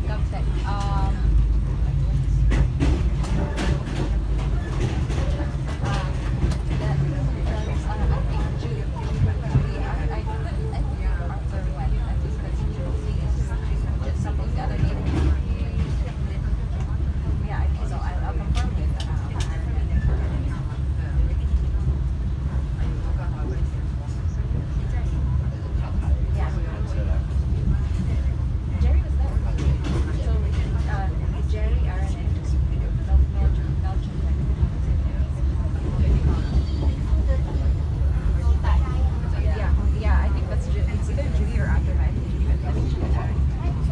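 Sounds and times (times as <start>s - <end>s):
passengers talking: 0.0s - 43.9s
train carriage rumbling on track: 0.0s - 43.9s.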